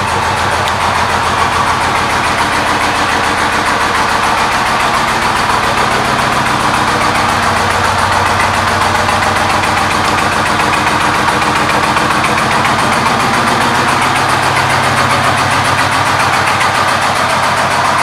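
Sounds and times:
motorcycle engine idling: 0.0 - 18.0.

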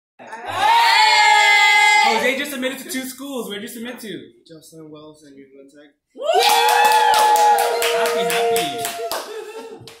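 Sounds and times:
people cheering: 0.3 - 2.4, 6.2 - 10.0
group clapping: 6.3 - 10.0.

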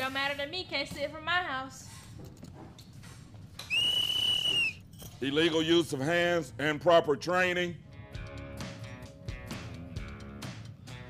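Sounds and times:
referee's whistle blast: 3.6 - 4.8.

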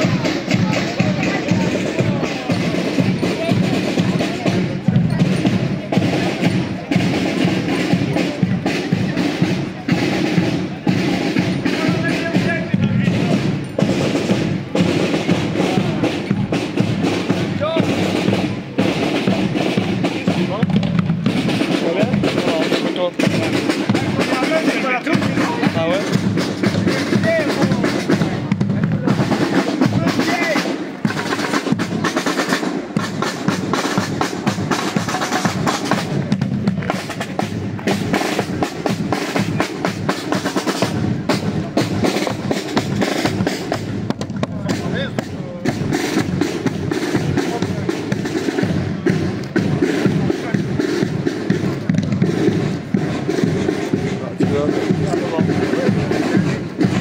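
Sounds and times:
marching snare drums: 0.0 - 57.0.

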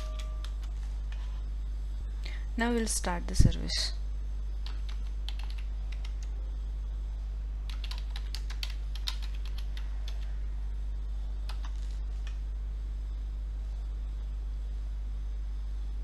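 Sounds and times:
computer keyboard typing: 0.0 - 1.0, 4.6 - 6.3, 7.7 - 10.3, 11.5 - 12.4
low electrical hum: 0.0 - 16.0.

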